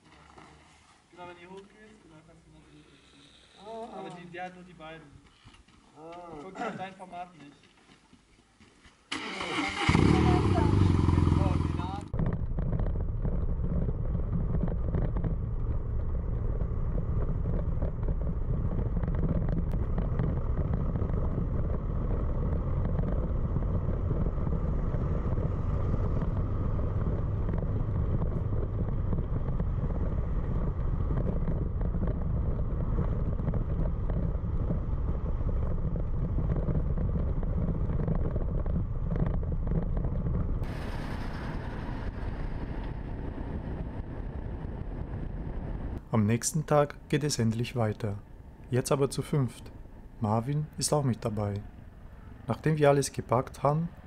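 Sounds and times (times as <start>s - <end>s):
motorcycle engine: 9.2s - 46.0s
wind rumble: 9.9s - 54.0s.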